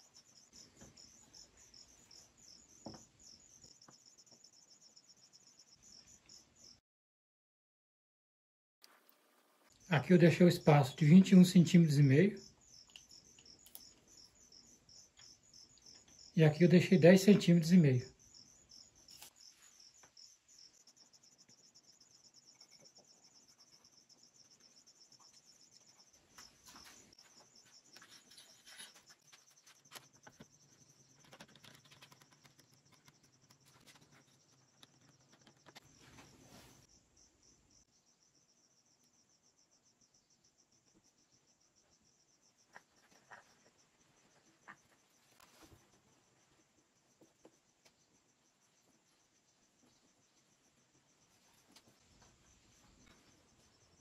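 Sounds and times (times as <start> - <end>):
cricket chirping: 0.0 - 6.8, 9.2 - 54.0.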